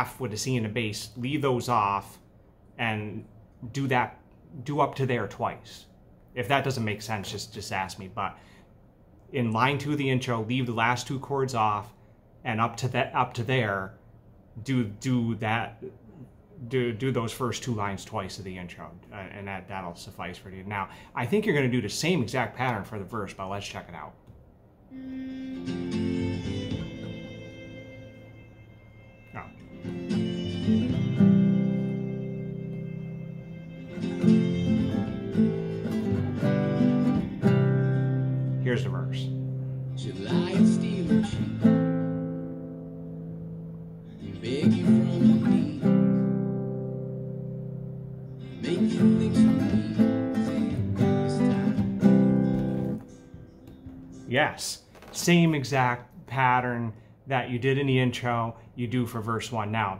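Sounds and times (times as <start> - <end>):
guitar music: 24.9 - 54.6.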